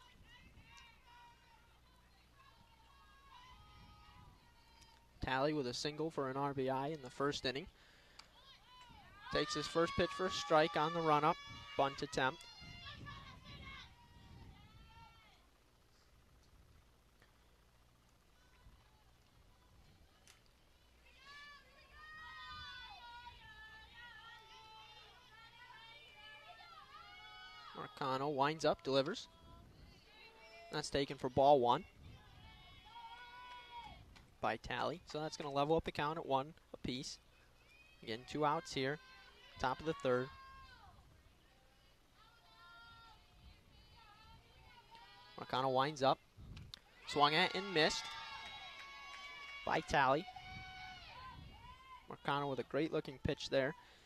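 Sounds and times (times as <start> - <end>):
faint high-pitched voices calling out: 8.3 - 15.5, 29.1 - 34.1, 37.5 - 45.5.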